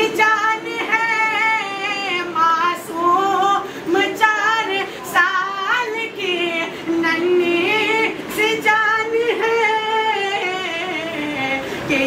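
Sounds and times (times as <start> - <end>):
person singing devotional song: 0.0 - 12.0.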